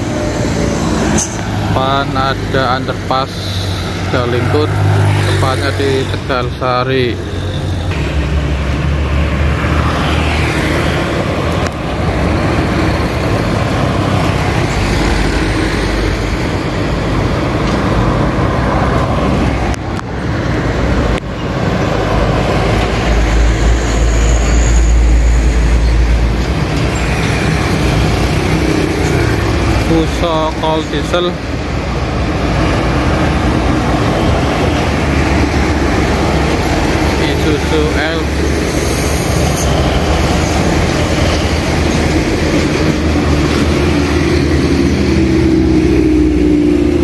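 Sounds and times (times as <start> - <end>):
diesel trucks passing: 0.0 - 47.0
motorbikes passing: 0.0 - 47.0.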